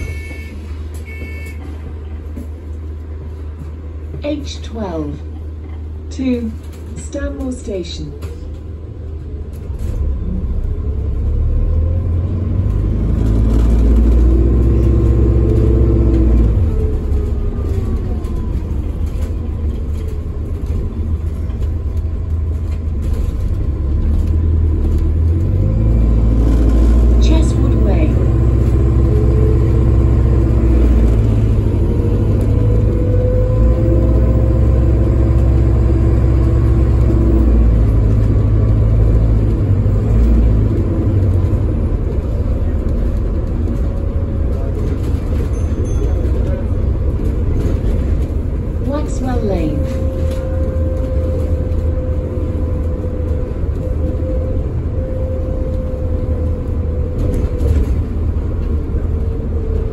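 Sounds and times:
bus engine rumbling: 0:00.0 - 0:59.9.

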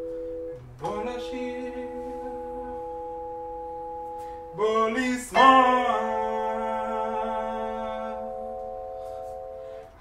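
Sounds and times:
vibraphone chord ringing: 0:00.0 - 0:10.0.

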